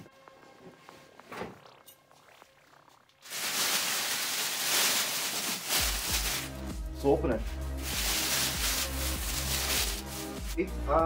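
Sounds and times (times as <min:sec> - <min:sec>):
background music: 0:00.0 - 0:11.0
plastic bag rustling: 0:03.2 - 0:06.7, 0:07.4 - 0:10.6.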